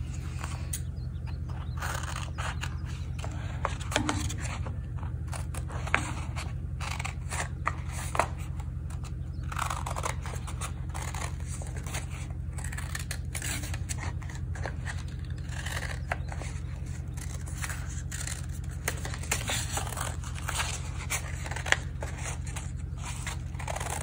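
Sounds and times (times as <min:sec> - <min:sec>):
steady low hum: 0:00.0 - 0:24.0
scissors snipping paper: 0:01.5 - 0:04.6, 0:05.3 - 0:24.0.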